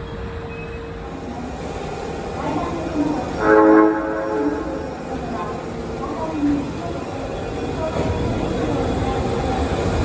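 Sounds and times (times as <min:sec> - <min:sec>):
train rumbling: 0:00.0 - 0:10.0
train horn blast: 0:03.4 - 0:04.9.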